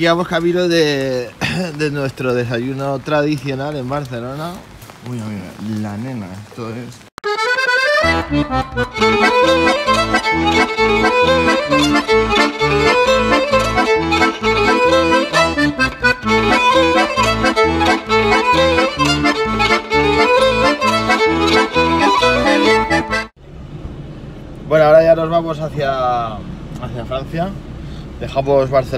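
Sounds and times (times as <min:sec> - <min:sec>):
accordion folk tune: 0:07.2 - 0:23.4
pulsing bass beat: 0:08.0 - 0:23.3.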